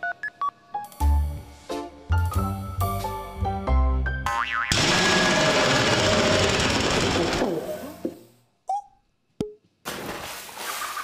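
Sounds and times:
cartoon boing: 0:04.3 - 0:05.2
loud noisy sound effect: 0:04.7 - 0:07.5.

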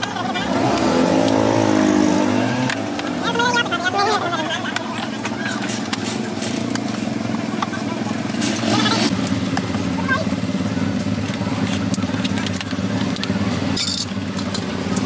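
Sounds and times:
engine running: 0:00.0 - 0:15.0.

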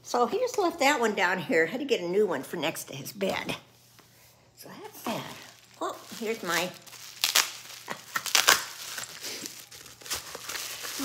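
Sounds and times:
plastic wrapper crinkling: 0:05.1 - 0:11.0.

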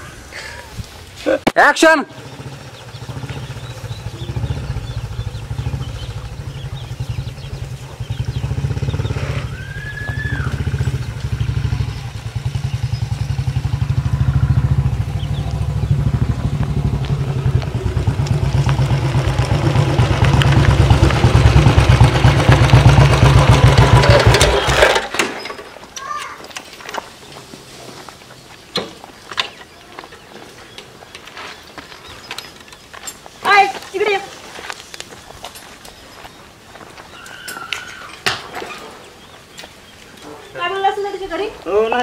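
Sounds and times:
motorcycle engine running: 0:02.1 - 0:25.1.

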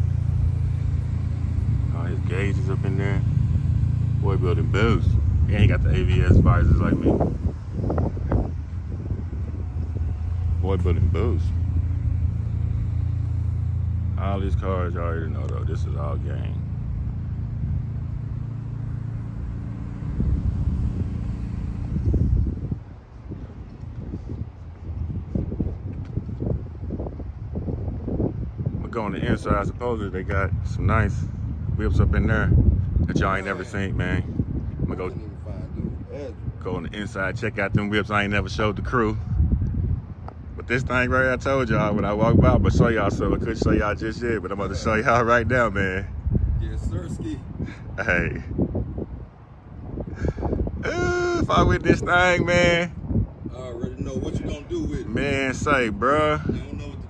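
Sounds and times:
car engine idling: 0:00.0 - 0:28.2
wind buffeting microphone: 0:00.0 - 0:57.0.

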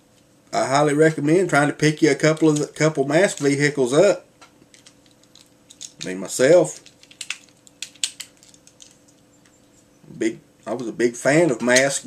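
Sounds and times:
faint steady hum: 0:00.0 - 0:12.0
plastic toy clicking and clattering: 0:06.8 - 0:09.0.

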